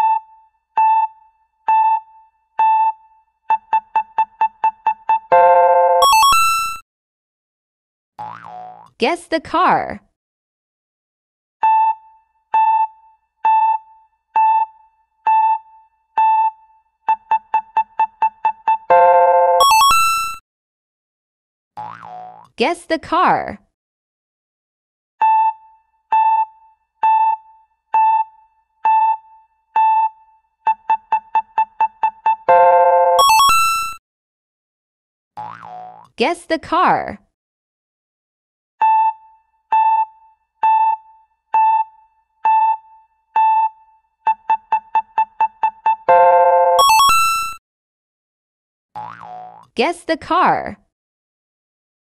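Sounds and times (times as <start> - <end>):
electronic jingle with beeps: 5.3 - 6.8, 18.9 - 20.4, 32.5 - 34.0, 46.1 - 47.6
cartoon boing sound effect: 8.2 - 9.0, 21.8 - 22.5, 35.4 - 36.1, 49.0 - 49.7.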